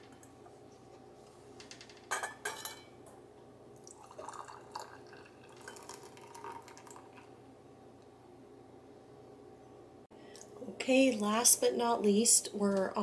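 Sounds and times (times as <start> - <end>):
jelly pouring into jar: 3.8 - 7.4.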